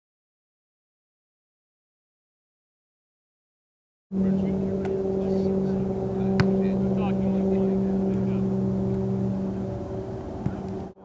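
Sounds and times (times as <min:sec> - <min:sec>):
low mechanical motor hum: 0:04.2 - 0:11.0.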